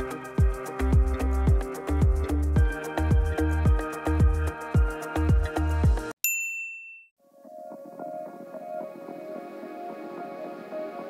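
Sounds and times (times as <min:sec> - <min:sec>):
electronic music with kick drum: 0:00.0 - 0:06.2.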